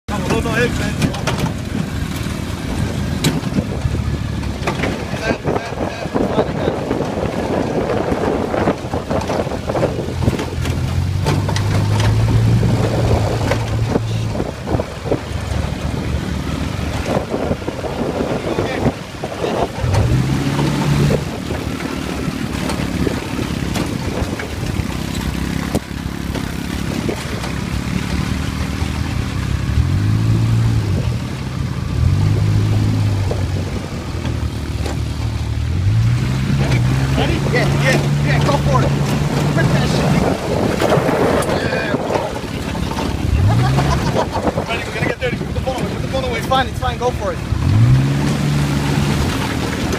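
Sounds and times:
engine revving: 0.0s - 49.9s
rough jolting knocks: 6.9s - 14.8s.

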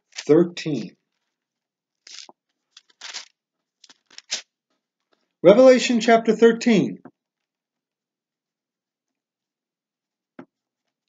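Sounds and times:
pages turning by hand: 0.0s - 0.4s, 2.0s - 4.5s.

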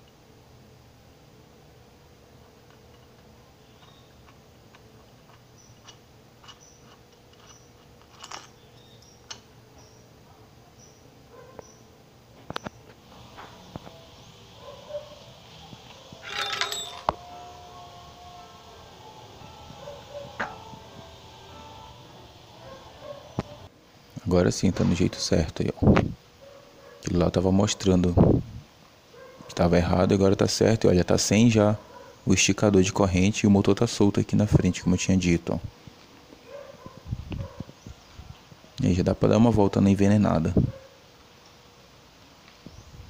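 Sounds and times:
small metal parts clicking: 2.7s - 9.4s, 16.2s - 17.2s.

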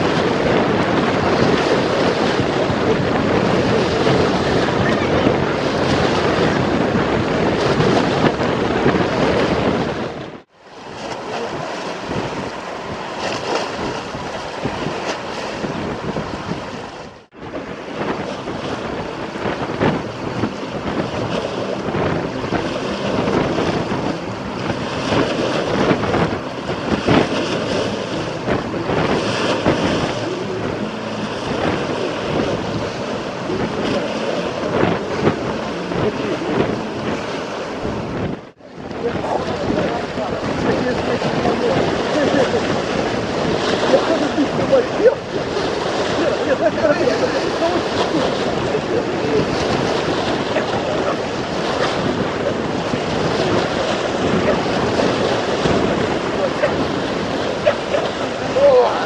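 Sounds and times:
waves breaking against concrete: 0.0s - 59.0s
wind buffeting microphone: 0.0s - 59.0s.

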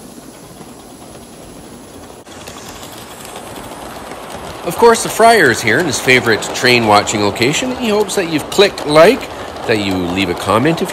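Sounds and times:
steam hissing: 0.0s - 10.9s
wheels clicking over rail joints: 0.0s - 10.9s.

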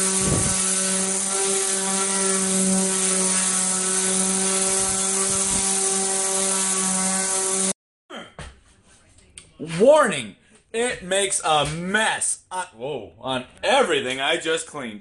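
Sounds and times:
orbital sander on cement: 0.0s - 7.8s.

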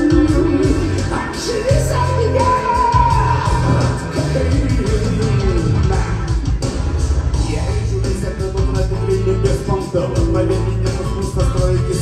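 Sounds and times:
man singing into microphone: 0.0s - 6.4s, 7.4s - 12.0s
loud pop-rock music: 0.0s - 12.0s.

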